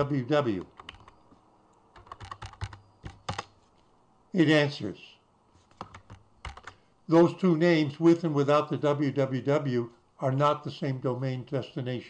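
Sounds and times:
keyboard typing: 0:00.6 - 0:01.3, 0:01.9 - 0:03.6, 0:05.7 - 0:06.8.

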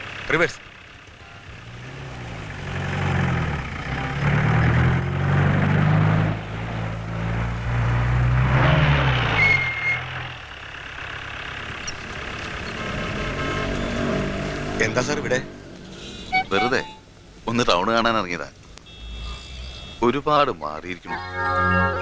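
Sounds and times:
auto-rickshaw engine running: 0:00.0 - 0:22.0
brief high-pitched squeal: 0:09.3 - 0:10.1, 0:16.2 - 0:17.1.

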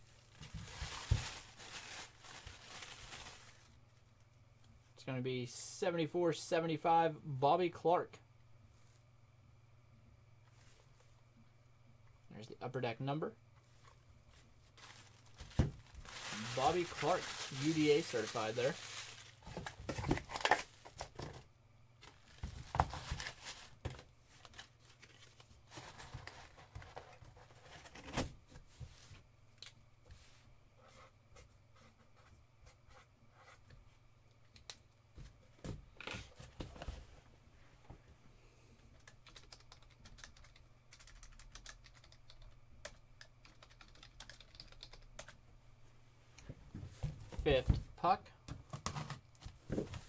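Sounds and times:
typing on computer keyboard: 0:39.0 - 0:45.4.

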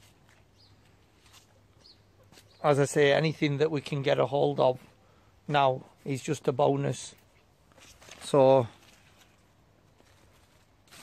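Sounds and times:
faint bird chirps: 0:00.4 - 0:03.0.

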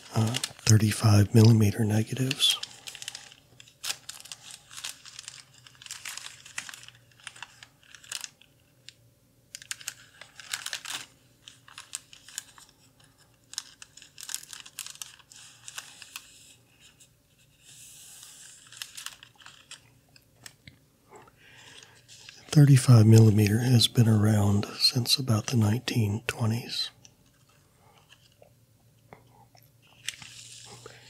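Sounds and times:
plastic sleeves crinkling: 0:00.0 - 0:24.0.

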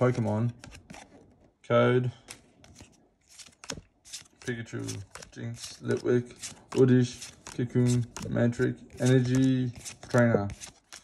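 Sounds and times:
trading cards ticking and scraping: 0:02.2 - 0:11.0.

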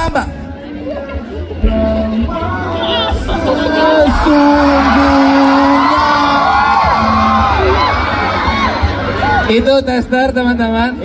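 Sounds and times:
background music: 0:00.0 - 0:11.0
crowd whooping and cheering: 0:02.3 - 0:09.7.

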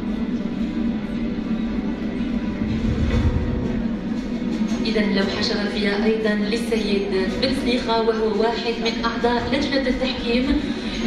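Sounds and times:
steady low drone: 0:00.0 - 0:06.6
background music: 0:00.0 - 0:11.0.

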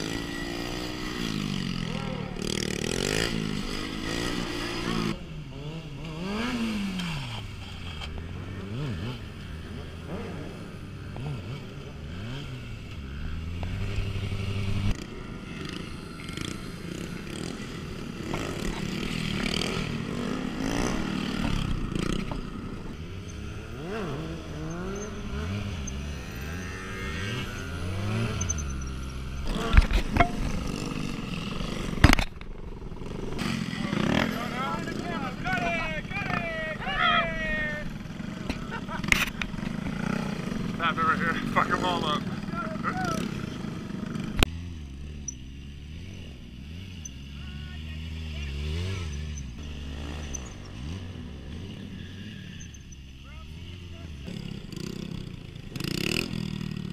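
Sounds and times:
motorcycle engine revving: 0:00.0 - 0:56.9
voices: 0:01.8 - 0:02.8, 0:33.4 - 0:43.7, 0:47.0 - 0:50.2, 0:53.1 - 0:54.9.

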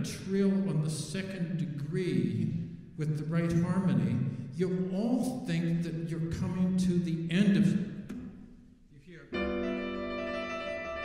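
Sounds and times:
grand piano trill: 0:09.2 - 0:11.0.

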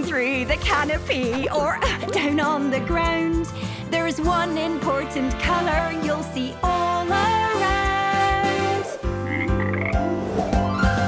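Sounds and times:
children's song backing music: 0:00.0 - 0:09.4
cartoon frog croaking: 0:01.3 - 0:02.0, 0:09.2 - 0:10.0.

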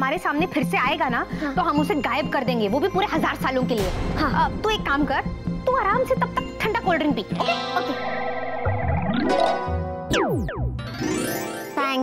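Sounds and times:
shimmering magic chord: 0:06.4 - 0:11.8.

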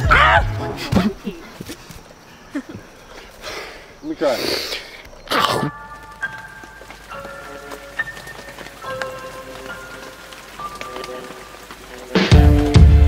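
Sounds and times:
steady rain falling: 0:00.0 - 0:13.0.

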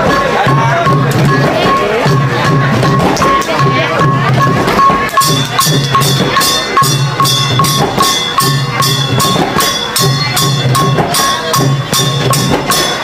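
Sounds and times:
drums beating quick rhythm: 0:00.0 - 0:13.0.

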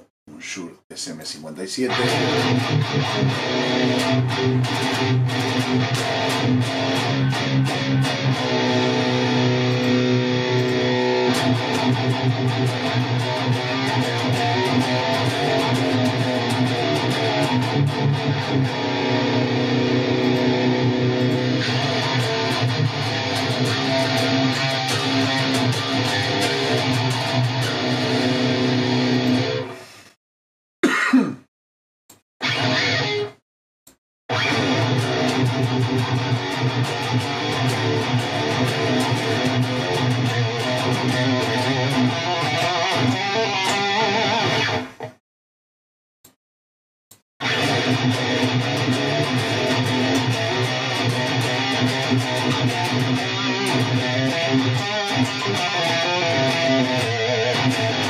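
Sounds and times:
distorted electric guitar riffing: 0:01.8 - 0:29.8, 0:32.4 - 0:33.4, 0:34.3 - 0:45.1, 0:47.4 - 0:58.0
guitar stabs: 0:01.8 - 0:29.8, 0:32.4 - 0:33.4, 0:34.3 - 0:45.2, 0:47.4 - 0:58.0.

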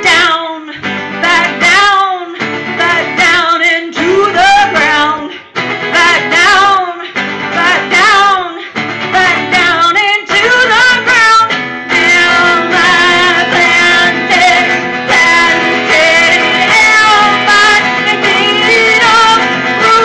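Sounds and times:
strummed acoustic guitar: 0:00.0 - 0:20.0
woman singing: 0:00.0 - 0:20.0.

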